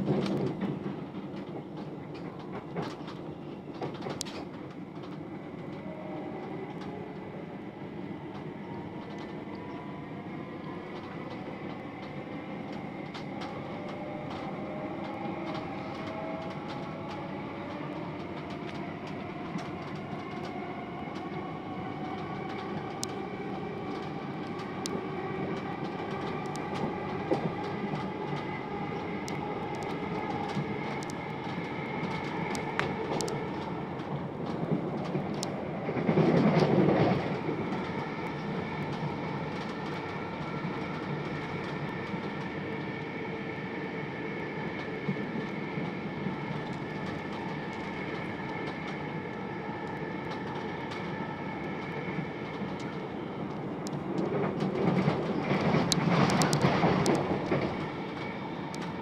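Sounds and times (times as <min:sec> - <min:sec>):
clicks from the track: 0:00.0 - 0:05.8, 0:52.5 - 0:59.0
train wheels rumbling on rail: 0:00.0 - 0:59.0.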